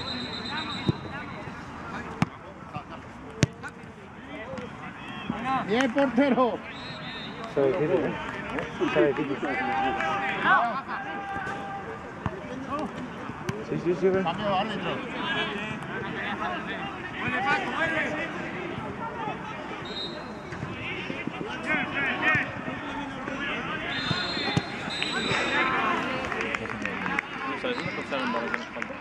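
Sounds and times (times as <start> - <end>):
footballers shouting and calling: 0.0 - 29.0.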